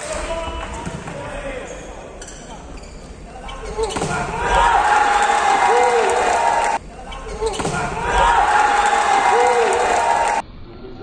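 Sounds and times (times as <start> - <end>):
players shouting: 3.3 - 10.4
volleyball smacks in indoor hall: 3.8 - 6.8, 7.4 - 10.4.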